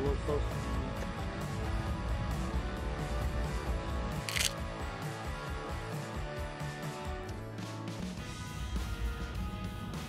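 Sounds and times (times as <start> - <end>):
rock music: 0.4 - 10.0
camera shutter click: 4.2 - 4.6.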